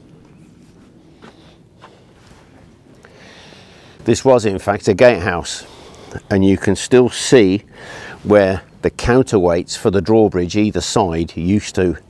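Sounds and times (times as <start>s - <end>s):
footsteps on wooden footbridge: 0.0s - 2.7s
low outdoor background: 0.0s - 12.0s.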